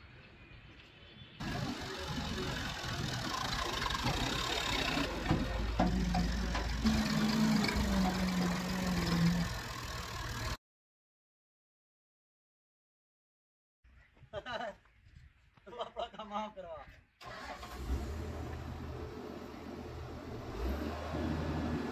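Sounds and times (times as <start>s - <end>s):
diesel tractor engine running: 1.4s - 10.6s.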